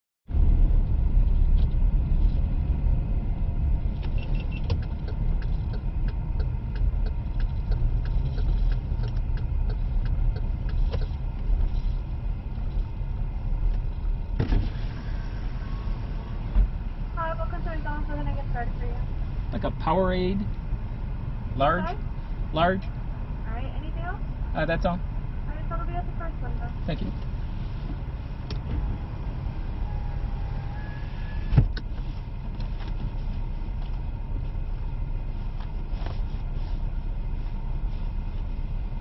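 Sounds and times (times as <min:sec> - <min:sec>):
car engine and road rumble: 0:00.3 - 0:39.0.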